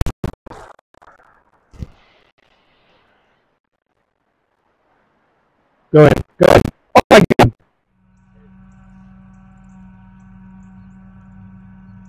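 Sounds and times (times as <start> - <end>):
faint outdoor noise: 0.5 - 12.0.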